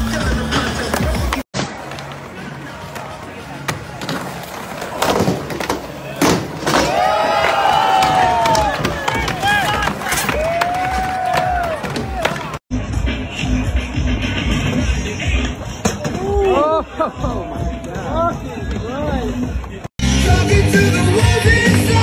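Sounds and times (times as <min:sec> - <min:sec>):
crowd shouting and cheering: 0:00.0 - 0:22.0
skateboard clacks: 0:00.1 - 0:12.6.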